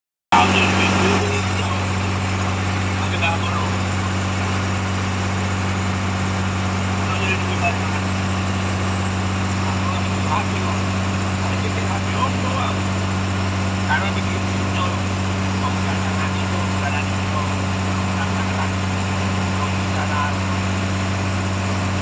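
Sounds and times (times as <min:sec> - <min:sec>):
boat engine droning: 0:00.3 - 0:22.0.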